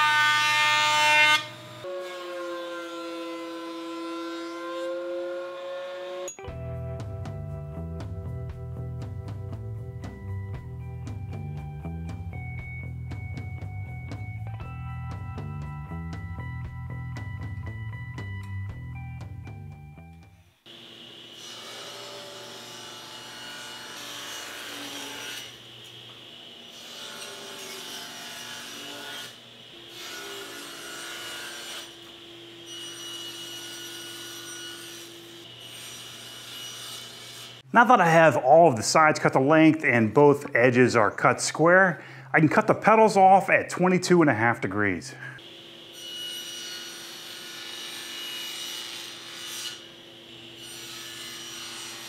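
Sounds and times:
table saw cutting wood: 0.0s - 6.4s, 20.2s - 37.7s, 45.4s - 52.0s
background music: 6.3s - 20.5s.

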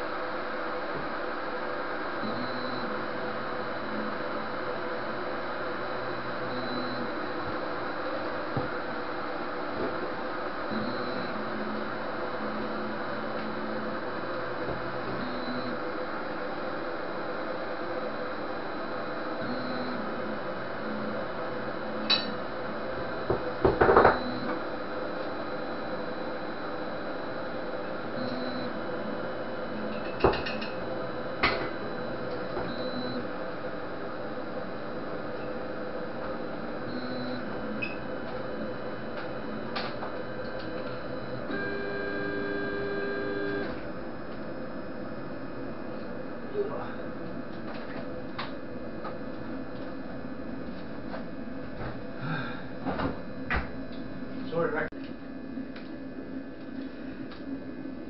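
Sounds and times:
printer hum: 0.0s - 58.0s
stepper motor whines: 36.7s - 43.9s.

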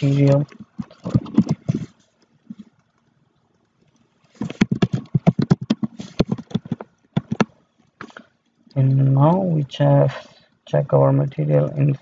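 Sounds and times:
computer keyboard keys clicking: 4.6s - 7.4s.

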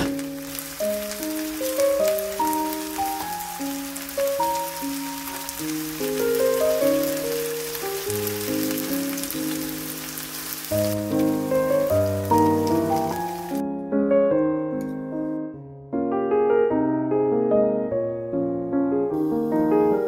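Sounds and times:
chicken sizzling in frying pan: 0.0s - 13.6s.

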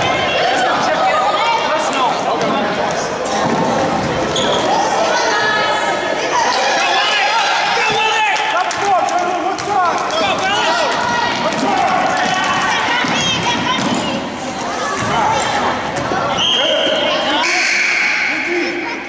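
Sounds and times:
spectators talking and shouting: 0.0s - 19.0s.

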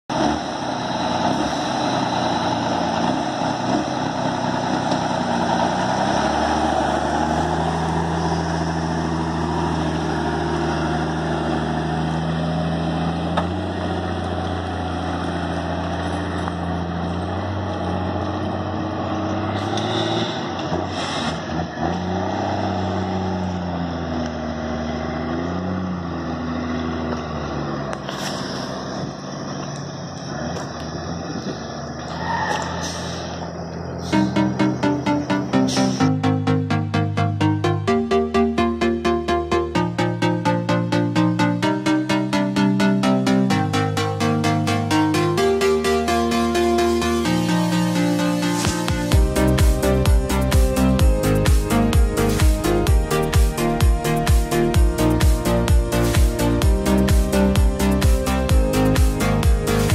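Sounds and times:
truck engine driving off: 0.0s - 59.9s.

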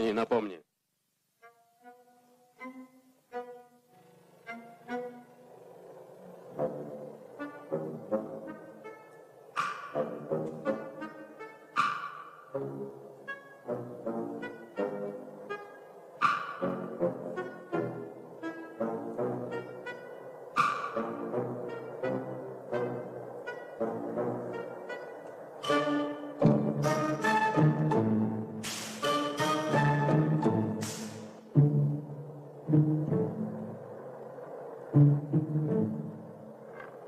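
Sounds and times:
orchestral score with brass and strings: 1.4s - 37.0s
sharp accented orchestral hits: 6.5s - 33.4s.

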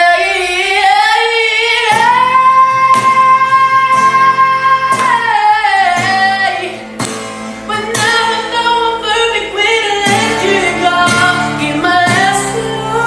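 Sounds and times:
man singing in a high voice: 0.0s - 6.7s
strummed acoustic guitar: 0.0s - 13.0s.

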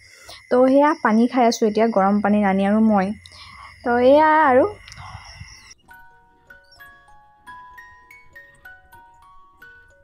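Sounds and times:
soft chime-like melody: 5.2s - 10.0s.

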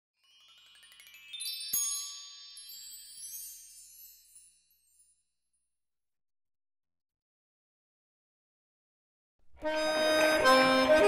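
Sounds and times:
shimmering bell-like chime: 0.2s - 5.6s.

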